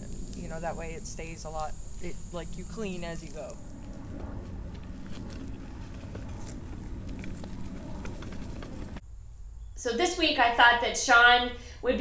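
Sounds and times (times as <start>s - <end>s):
low rumble: 3.0s - 9.0s
dry sticks cracking: 3.7s - 9.0s.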